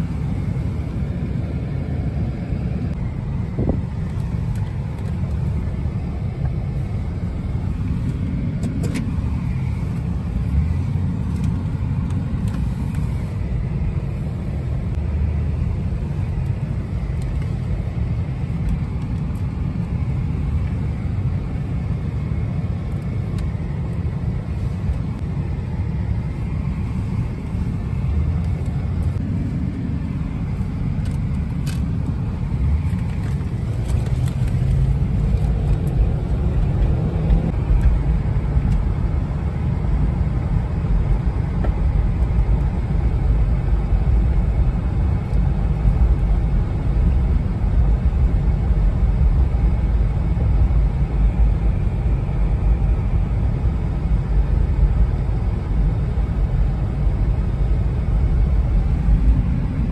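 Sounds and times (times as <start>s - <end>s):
car engine and tyre noise: 0.0s - 59.9s.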